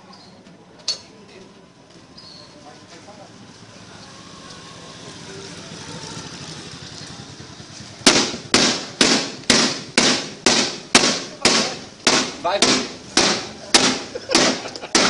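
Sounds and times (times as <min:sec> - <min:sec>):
motorcycle engine: 0:02.6 - 0:15.0
sharp gunshot-like bangs: 0:08.0 - 0:15.0.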